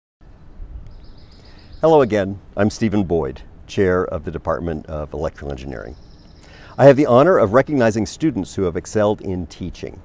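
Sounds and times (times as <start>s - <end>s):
outdoor background noise: 0.2s - 10.0s
small bird chirping: 0.3s - 2.4s, 5.3s - 7.2s.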